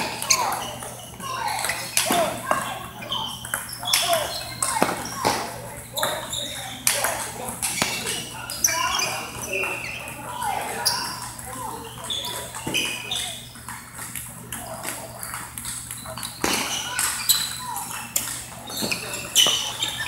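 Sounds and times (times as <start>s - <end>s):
table tennis balls clicking: 0.2s - 8.2s.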